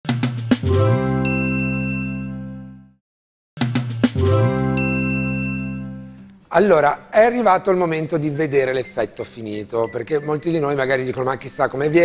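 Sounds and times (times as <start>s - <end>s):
bright chime: 4.8s - 5.9s.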